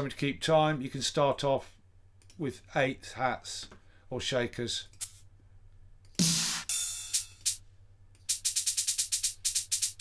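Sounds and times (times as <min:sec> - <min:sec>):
drum machine percussion hits: 0:06.2 - 0:07.6, 0:08.2 - 0:10.0.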